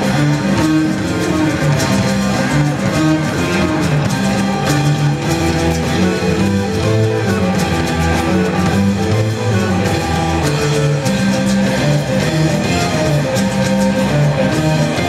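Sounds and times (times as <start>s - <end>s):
bass guitar: 0.0s - 15.0s
electric and acoustic guitars: 0.0s - 15.0s.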